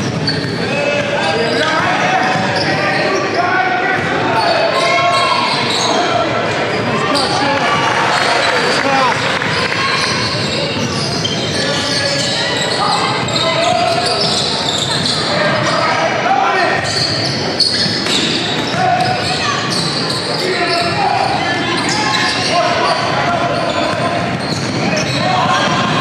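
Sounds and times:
voices shouting and talking: 0:00.0 - 0:26.0.

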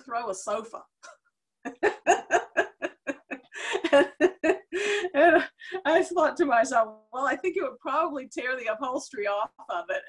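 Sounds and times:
woman laughing: 0:01.7 - 0:05.8.

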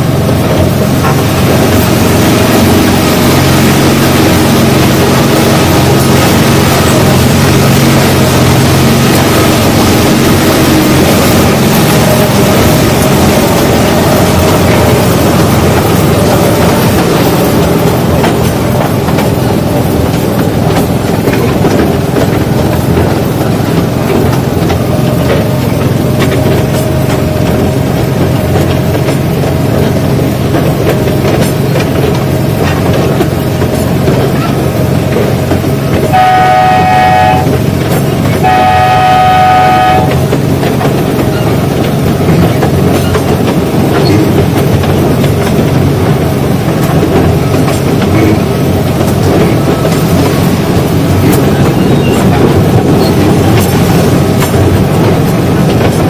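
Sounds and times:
train engine and wheel noise: 0:00.0 - 0:56.0
train horn blasts: 0:36.1 - 0:37.6, 0:38.4 - 0:40.3.

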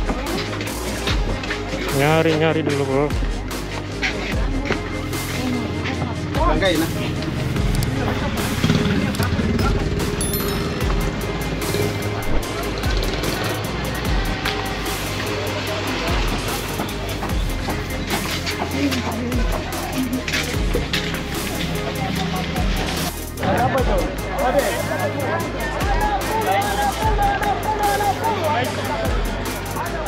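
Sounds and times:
vehicles running: 0:00.0 - 0:25.8
music with steady beat: 0:00.0 - 0:30.0
people talking: 0:01.9 - 0:03.2, 0:04.0 - 0:10.7, 0:18.4 - 0:30.0.

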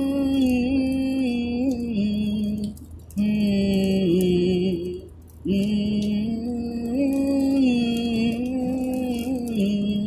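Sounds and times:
man singing a cappella: 0:00.0 - 0:10.0.

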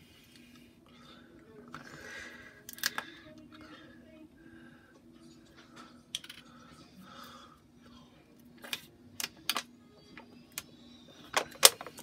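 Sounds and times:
low steady hum: 0:00.0 - 0:12.0
faint voice: 0:01.0 - 0:08.3.

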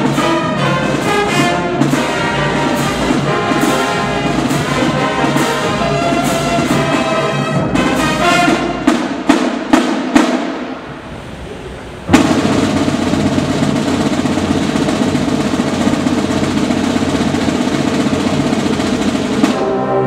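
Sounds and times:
brass chord: 0:00.0 - 0:09.2, 0:18.2 - 0:20.0
snare drum roll: 0:00.0 - 0:20.0.

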